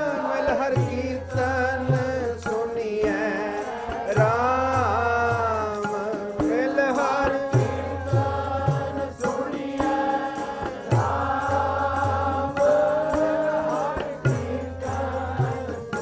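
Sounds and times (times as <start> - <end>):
harmonium chords: 0.0 - 16.0
voices singing: 0.0 - 16.0
tabla strokes: 0.4 - 16.0.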